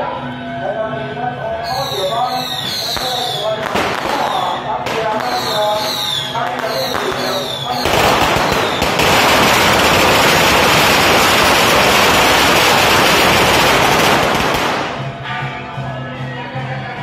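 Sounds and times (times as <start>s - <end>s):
firecrackers crackling: 1.7s - 15.3s.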